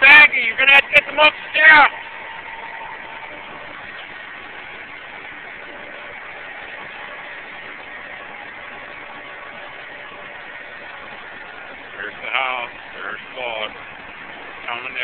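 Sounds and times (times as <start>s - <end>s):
diesel engine droning: 0.0s - 15.0s.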